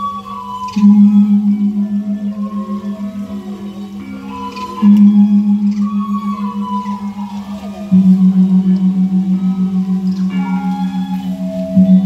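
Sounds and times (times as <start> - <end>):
gamelan melodic notes: 0.0 - 12.0
deep gong ringing: 0.8 - 12.0.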